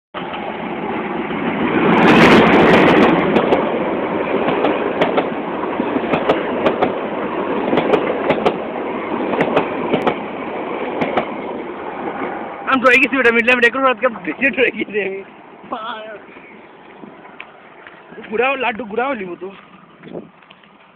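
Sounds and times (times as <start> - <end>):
wheels clacking over rail joints: 0.2 - 14.7
diesel train passing: 0.2 - 20.9.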